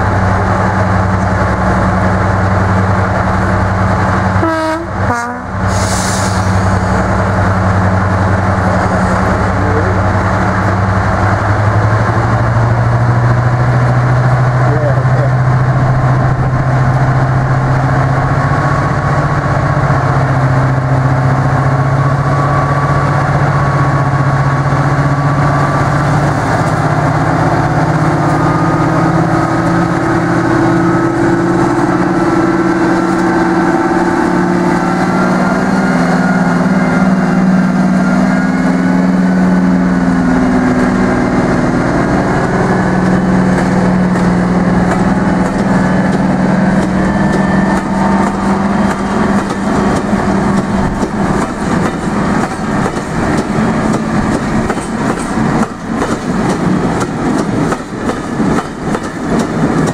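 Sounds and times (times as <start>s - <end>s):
diesel locomotive engines: 0.0s - 59.9s.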